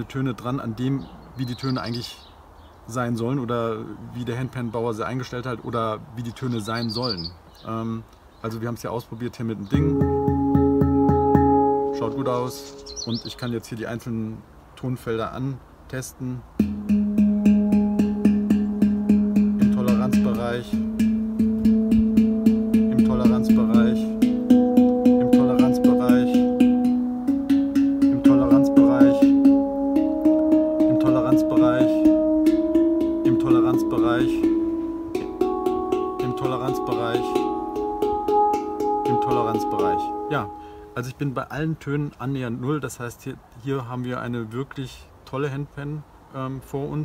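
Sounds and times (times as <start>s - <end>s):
steel handpan notes: 9.7s - 13.2s, 16.6s - 41.0s.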